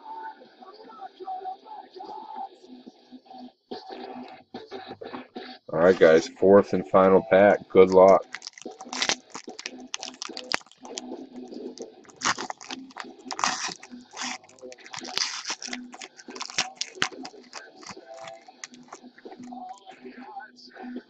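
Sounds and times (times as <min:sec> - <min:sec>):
foil wrapper tearing and crinkling: 0:07.9 - 0:20.0.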